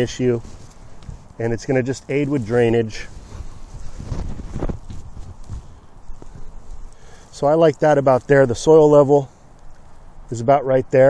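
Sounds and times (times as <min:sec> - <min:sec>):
hands working loose soil: 0:00.0 - 0:10.2.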